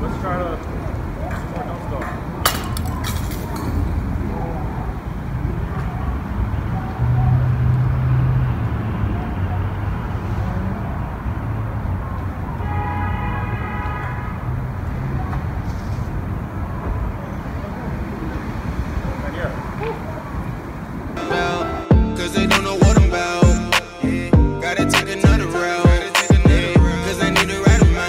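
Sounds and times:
street traffic rumble: 0:00.0 - 0:28.0
steady pitched tone: 0:21.2 - 0:28.0.

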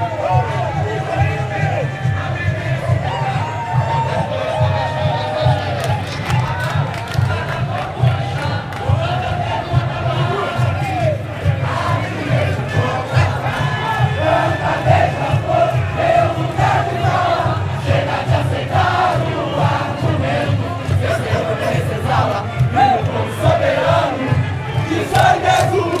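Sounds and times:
deep drums pulsing: 0:00.0 - 0:25.9
crowd singing in unison: 0:00.0 - 0:26.0.

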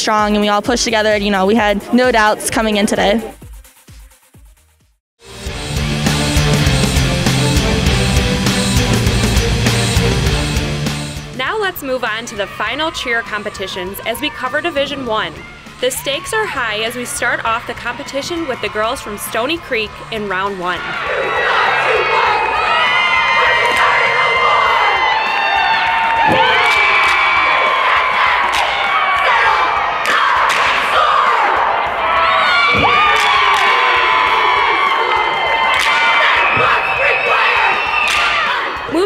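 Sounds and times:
girls shouting a cheer in unison: 0:11.8 - 0:39.0.

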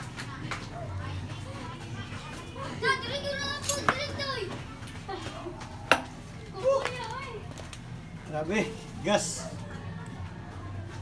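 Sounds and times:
children chattering: 0:00.0 - 0:07.7, 0:09.0 - 0:11.0.

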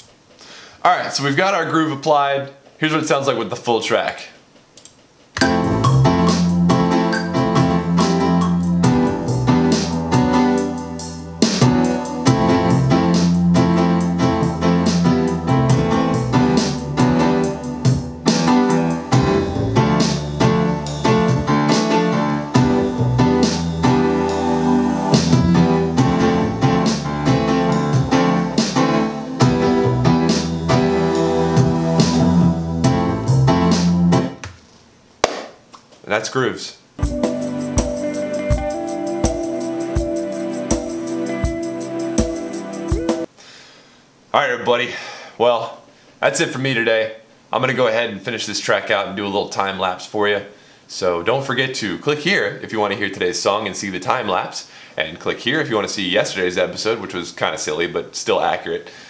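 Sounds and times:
drum pattern: 0:05.4 - 0:22.0, 0:37.0 - 0:43.3
held chords: 0:05.4 - 0:34.3, 0:37.0 - 0:43.3.

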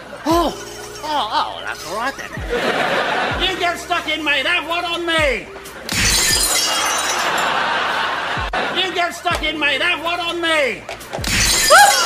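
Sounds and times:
glass bottle smashing: 0:05.9 - 0:07.6, 0:11.2 - 0:12.0.

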